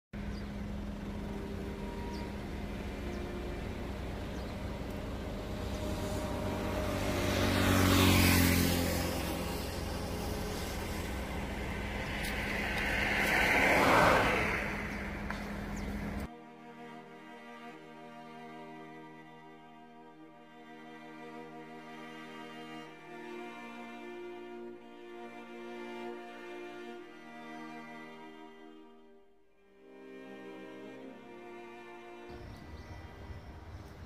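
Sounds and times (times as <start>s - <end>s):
car engine and road hum: 0.2s - 16.3s
vehicle passing: 0.2s - 16.3s, 29.9s - 34.0s.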